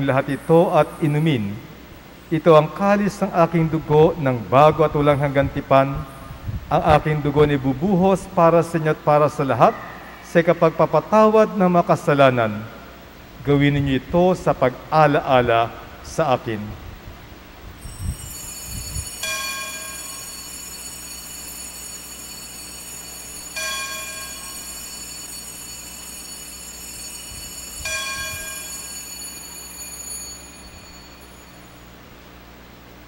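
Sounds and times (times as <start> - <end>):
altar bell ringing: 0.0 - 1.8, 17.8 - 32.0
steady low hum: 0.0 - 33.0.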